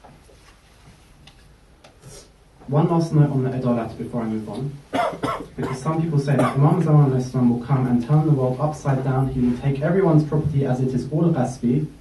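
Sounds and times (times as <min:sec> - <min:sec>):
faint irregular clicks: 0:01.2 - 0:02.0.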